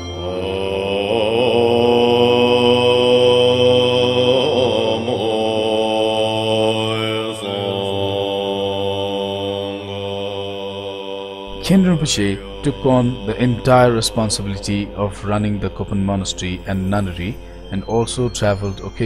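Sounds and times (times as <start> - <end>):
person chanting long notes: 0.0 - 19.0
steady drone: 0.0 - 19.0.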